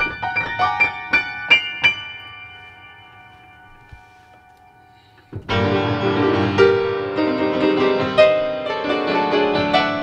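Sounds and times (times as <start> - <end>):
piano high notes ringing: 0.0 - 10.0.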